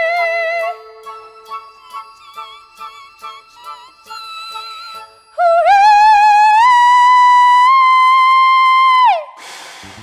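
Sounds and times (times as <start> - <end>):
stage smoke hissing: 9.4 - 10.0.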